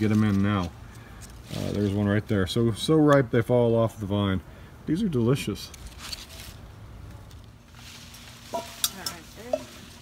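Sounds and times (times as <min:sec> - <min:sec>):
rustling of vine leaves: 0:00.0 - 0:02.5, 0:05.4 - 0:10.0.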